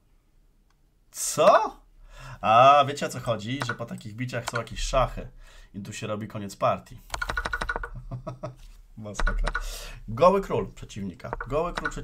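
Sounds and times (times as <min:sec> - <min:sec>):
computer keyboard keystrokes: 0:03.6 - 0:04.7, 0:07.1 - 0:08.0, 0:09.2 - 0:09.8, 0:11.3 - 0:12.0.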